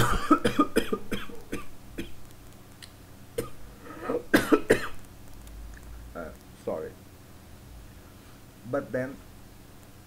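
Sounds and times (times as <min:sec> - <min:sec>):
man coughing: 0:00.0 - 0:02.2, 0:03.4 - 0:05.0.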